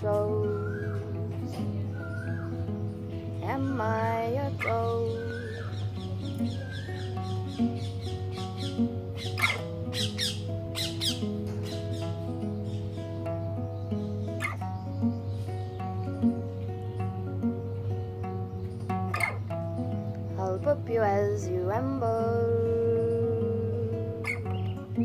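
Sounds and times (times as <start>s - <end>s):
fingerpicked acoustic guitar: 0.0s - 25.0s
sharp high calls: 4.6s - 12.9s.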